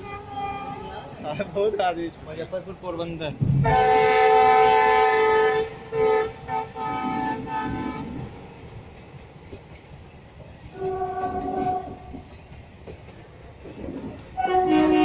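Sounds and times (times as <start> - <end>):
locomotive horn blasts: 0.0 - 1.2, 3.6 - 8.2, 10.8 - 12.1, 14.4 - 15.0
train running on rails: 0.0 - 15.0
fainter lower-pitched horn: 14.4 - 15.0.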